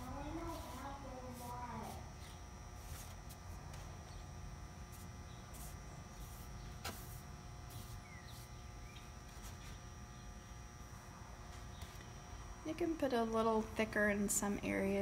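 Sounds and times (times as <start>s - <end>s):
paintbrush swishing on wood: 0.0s - 3.9s, 4.9s - 8.6s
low background noise: 0.0s - 15.0s.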